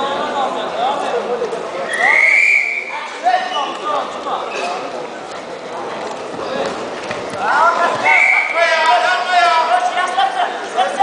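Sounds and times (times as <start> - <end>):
murmur of voices: 0.0 - 11.0
voices shouting and yelling: 1.8 - 4.7, 7.4 - 11.0.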